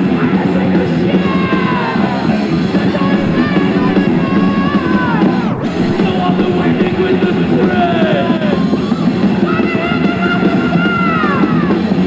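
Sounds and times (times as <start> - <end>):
live heavy metal band: 0.0 - 12.0
high melodic lines sliding down: 2.6 - 9.3.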